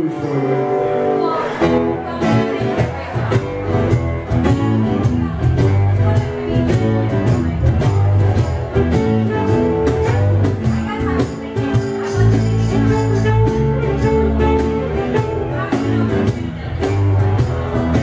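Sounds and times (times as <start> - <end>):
electric bass line: 0.0 - 18.0
strummed acoustic guitar: 0.0 - 18.0
cajon beat: 1.4 - 18.0
saxophone: 8.8 - 11.4, 12.5 - 16.4.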